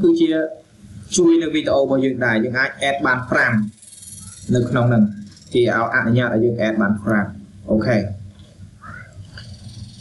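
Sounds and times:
faint murmur: 0.0 - 10.0
low microphone background noise: 0.0 - 10.0.

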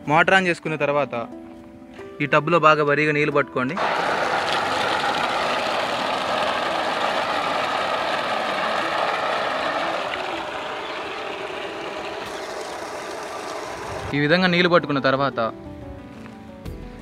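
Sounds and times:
water splashing into plastic tub: 3.8 - 14.2.

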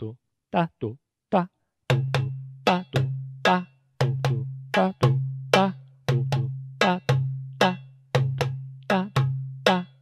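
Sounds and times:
goblet drum groove: 1.9 - 10.0.

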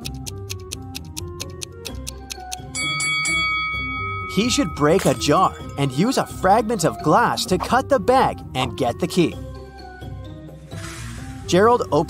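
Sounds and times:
timer ticking: 0.0 - 7.5
bright bell-like chime: 2.8 - 7.4.

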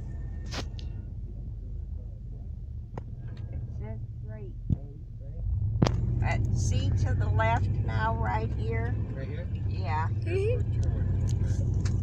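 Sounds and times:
car rumble inside cabin: 0.0 - 12.0.

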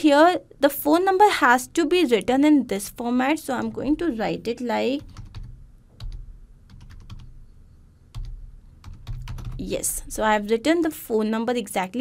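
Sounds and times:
typing on computer keyboard: 5.0 - 7.3, 8.1 - 9.6.

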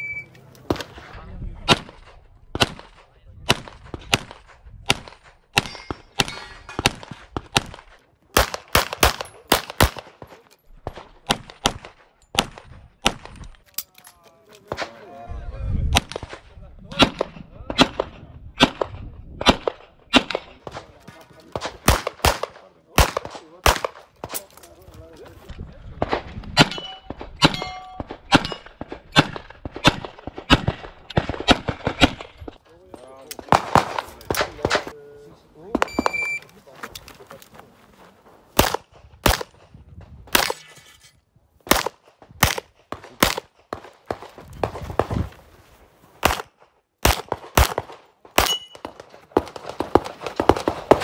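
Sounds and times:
handgun shots: 46.2 - 51.0.

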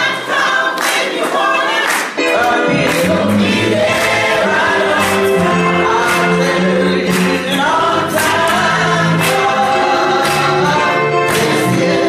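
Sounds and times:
choir singing gospel song: 0.0 - 12.0
instrumental accompaniment: 0.1 - 12.0.

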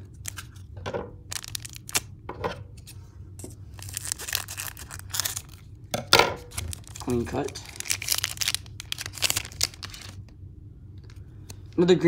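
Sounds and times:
foil wrapper crinkling: 0.0 - 2.1, 3.7 - 5.7, 6.4 - 10.3
foil wrapper ripping: 1.3 - 2.1, 3.7 - 5.7, 6.4 - 10.2.

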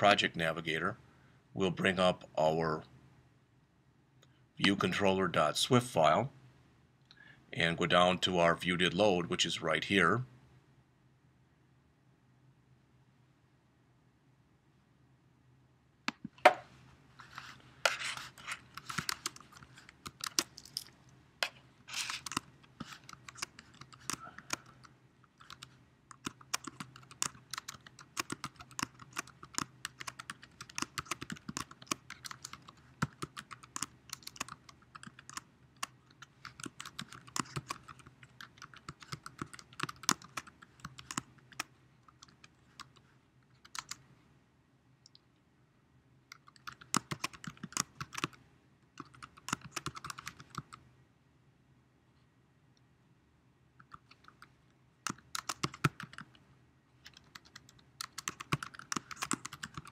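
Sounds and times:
faint steady hum: 0.0 - 59.9
typing on computer keyboard: 18.7 - 20.7, 22.2 - 24.8, 25.4 - 43.0, 43.6 - 44.0, 46.3 - 48.4, 49.0 - 50.8, 53.8 - 56.3, 57.0 - 59.9.

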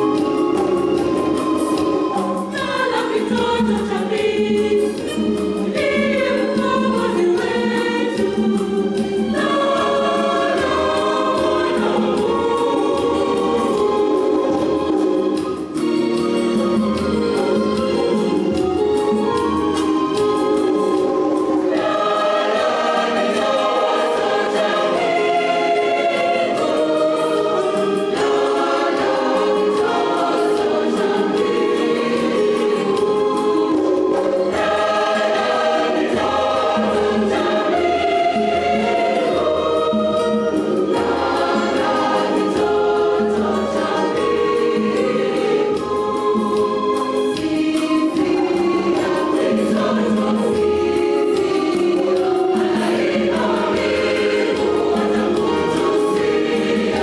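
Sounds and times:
choir singing a carol: 0.0 - 57.0.

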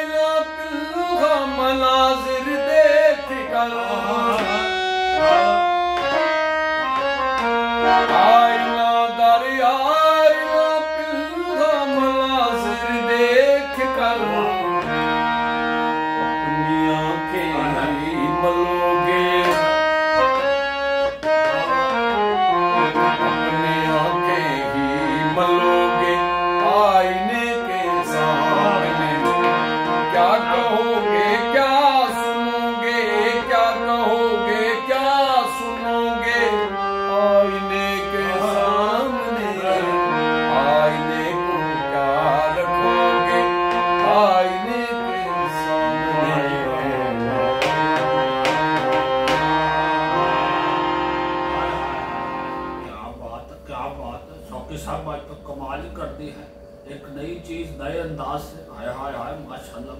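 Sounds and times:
harmonium melody: 0.0 - 59.9.

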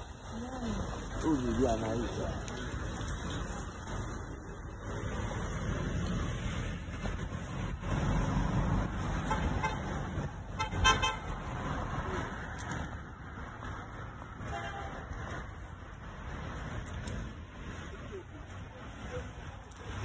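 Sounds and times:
vehicle passing: 0.0 - 20.0
vehicle horn toot: 10.6 - 11.2, 14.5 - 15.0.

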